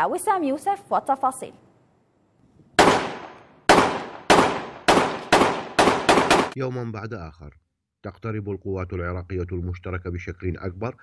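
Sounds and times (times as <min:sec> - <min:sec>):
gunshots with long echo: 0:02.8 - 0:06.6.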